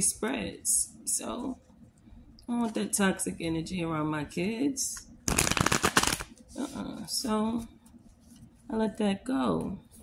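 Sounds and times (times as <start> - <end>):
cards being shuffled: 5.3 - 6.7.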